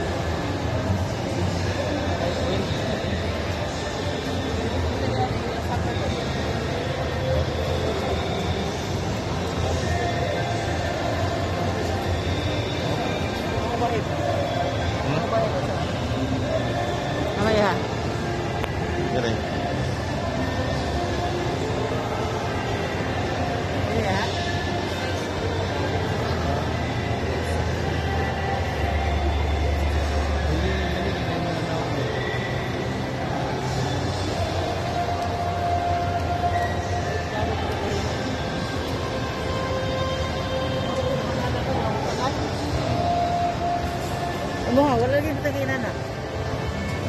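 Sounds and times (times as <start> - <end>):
indistinct crowd voices: 0.0 - 47.0.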